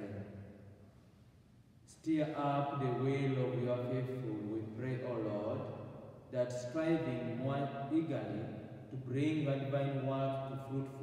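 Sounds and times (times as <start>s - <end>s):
man chanting a prayer: 1.9s - 5.7s, 6.3s - 11.0s.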